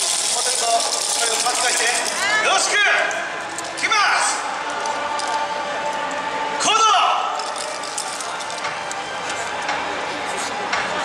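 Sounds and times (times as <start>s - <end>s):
wooden hand clappers clacking: 0.0s - 2.2s, 7.4s - 9.0s
loud shouted call: 6.5s - 7.4s.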